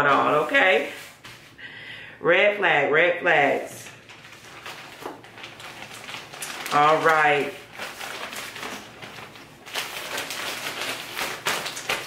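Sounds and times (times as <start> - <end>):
plastic bag crinkling: 3.8 - 12.0.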